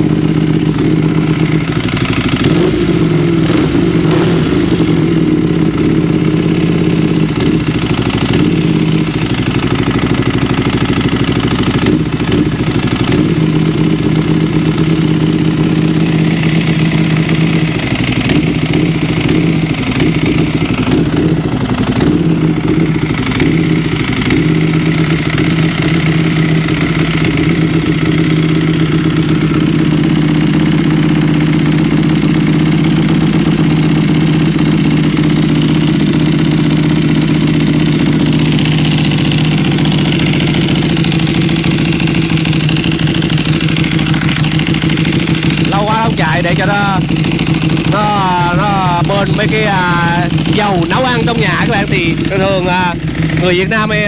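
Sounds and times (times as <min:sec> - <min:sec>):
motorcycle engine idling: 0:00.0 - 0:54.0.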